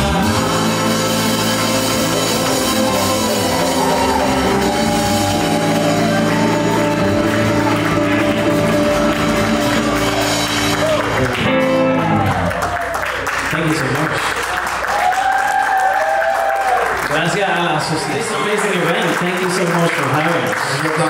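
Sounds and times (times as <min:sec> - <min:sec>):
electric guitar: 0:00.0 - 0:13.5
electric bass: 0:00.0 - 0:14.8.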